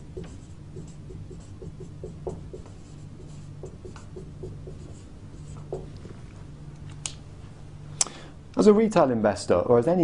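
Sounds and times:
steady low hum: 0.0s - 10.0s
marker squeaking on whiteboard: 0.2s - 5.9s.

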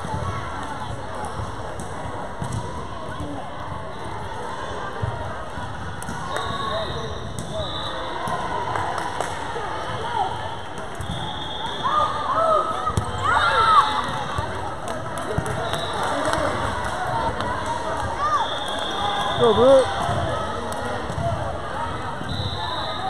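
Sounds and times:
voices talking and calling out: 0.2s - 23.0s
volleyball bounces and thuds: 1.4s - 3.4s, 19.9s - 21.6s.

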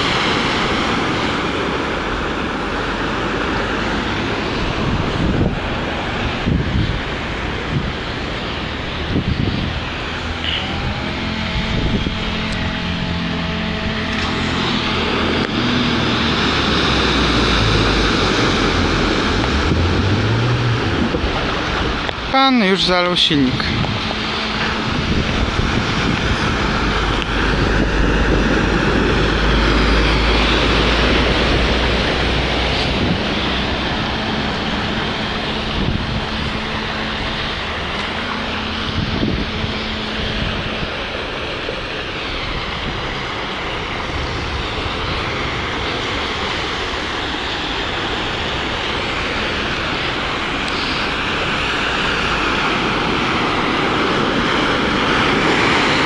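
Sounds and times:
car engines running: 0.0s - 56.0s
tyres splashing through water: 0.0s - 56.0s.

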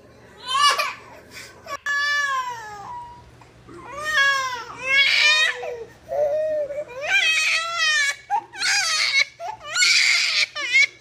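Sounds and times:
baby crying: 1.7s - 11.0s.

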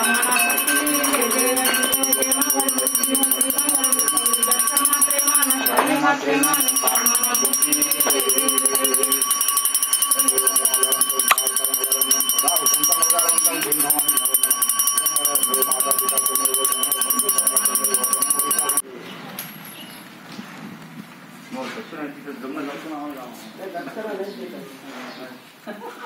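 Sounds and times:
small brass handbell ringing rapidly: 0.0s - 18.8s
voices chanting: 0.0s - 18.8s
quiet talk: 0.0s - 20.0s.

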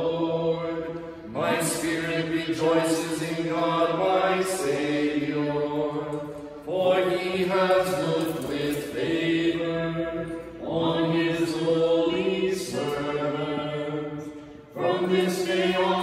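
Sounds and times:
slow liturgical chant: 0.0s - 16.0s.

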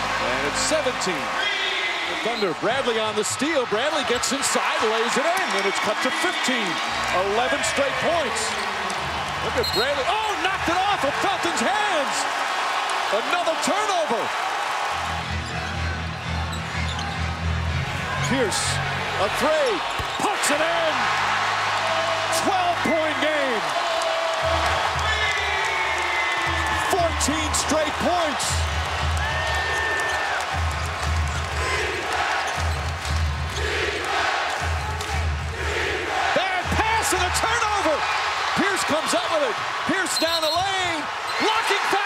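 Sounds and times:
arena crowd noise: 0.0s - 42.0s
sneakers squeaking on court: 16.4s - 17.3s, 19.8s - 20.2s, 39.6s - 41.5s.

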